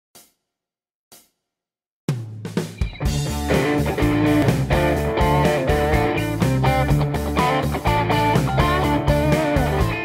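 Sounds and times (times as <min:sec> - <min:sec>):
blues-rock band playing: 0:02.8 - 0:10.0.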